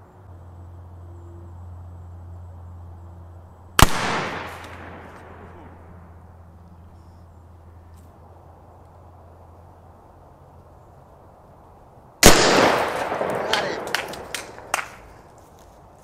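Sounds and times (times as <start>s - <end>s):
revolver gunshot with echo: 3.8s - 5.8s, 12.2s - 13.9s.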